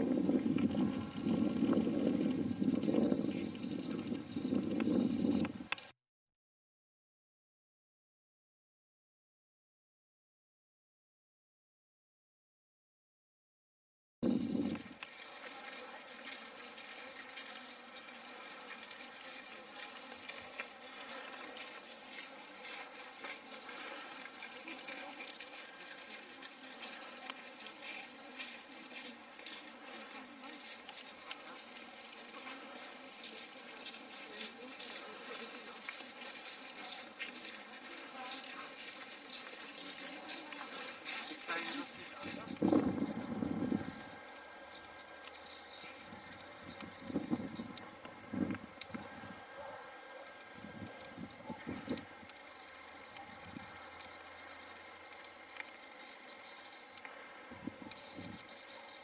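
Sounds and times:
buzzing hum: 0.0 - 5.9, 14.2 - 59.0
faint crackling: 14.6 - 58.9.

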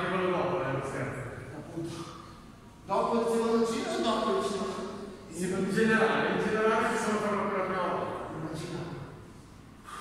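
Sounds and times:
man talking: 0.0 - 2.2, 2.8 - 9.2.

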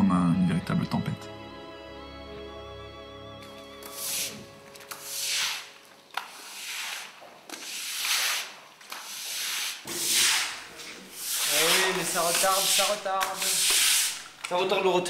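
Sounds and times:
push broom sweeping water: 3.8 - 14.7.

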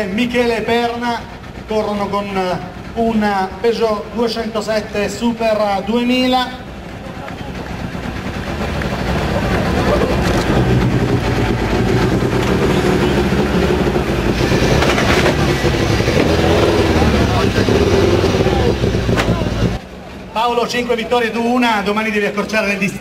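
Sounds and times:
rally car engine running: 0.0 - 19.9
voices: 0.0 - 23.0.

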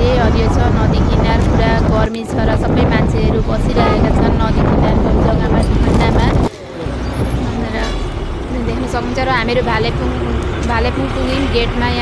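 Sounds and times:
road and wind noise: 0.0 - 12.0
vehicle hum: 0.0 - 12.0
voices: 0.0 - 12.0.

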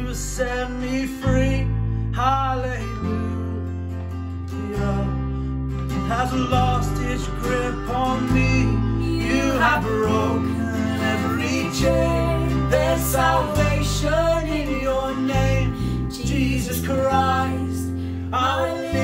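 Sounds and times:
man singing: 0.0 - 3.7, 4.5 - 5.2, 5.9 - 19.0
bass guitar: 0.0 - 19.0
strummed acoustic guitar: 0.0 - 19.0.

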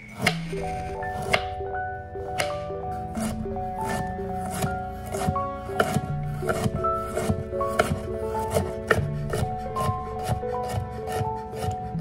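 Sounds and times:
knife chopping on wooden board: 3.2 - 11.7.

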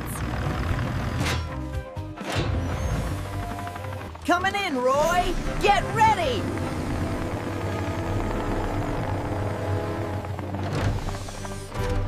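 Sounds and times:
background music with sustained notes: 0.0 - 12.0.

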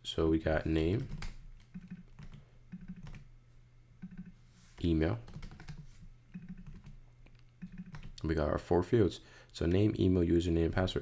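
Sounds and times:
faint low hum: 0.0 - 11.0
computer keyboard typing: 0.8 - 3.3, 4.0 - 4.4, 5.2 - 8.2.

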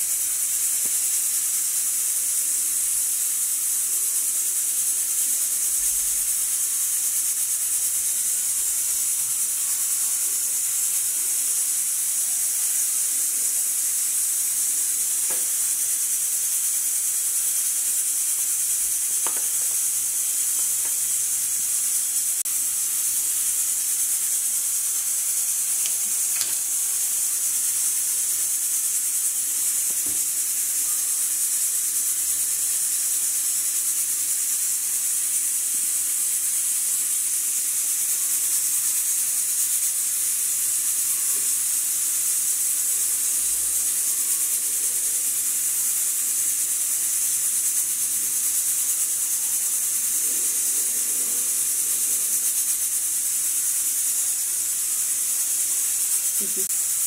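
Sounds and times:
steady high-pitched hiss: 0.0 - 57.0.

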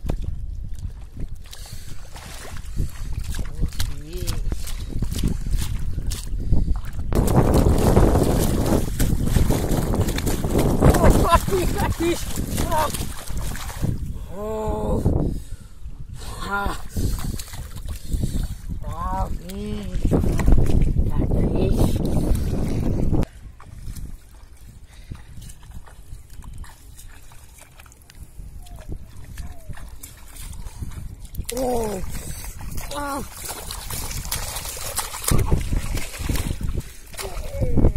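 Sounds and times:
muddy water splashing: 0.0 - 15.6, 16.2 - 37.9.

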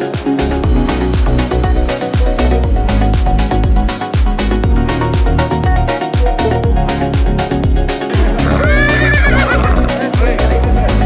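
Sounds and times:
electronic dance music: 4.1 - 11.0
horse whinnying: 8.1 - 10.0.

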